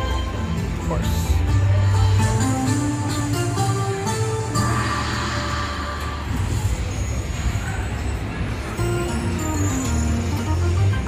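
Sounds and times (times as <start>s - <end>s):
slot machine bonus music: 8.8s - 11.0s.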